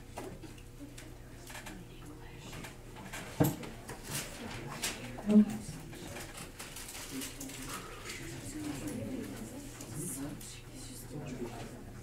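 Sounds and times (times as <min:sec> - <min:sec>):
murmur of low voices: 0:00.7 - 0:12.0.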